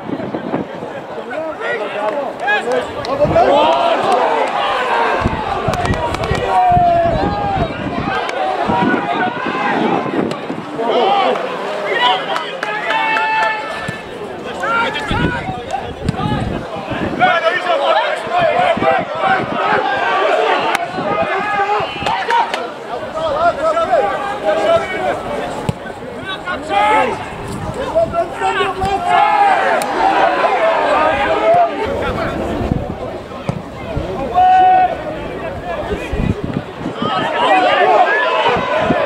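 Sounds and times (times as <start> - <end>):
players and spectators shouting: 0.0 - 39.0.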